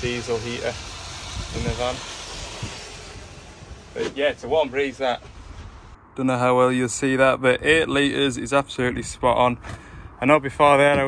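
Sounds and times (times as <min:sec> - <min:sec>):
wind rushing: 0:00.0 - 0:06.0.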